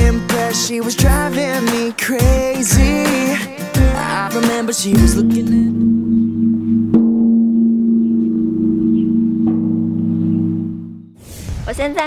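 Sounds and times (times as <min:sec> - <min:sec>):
low bell ringing: 0:04.9 - 0:11.2.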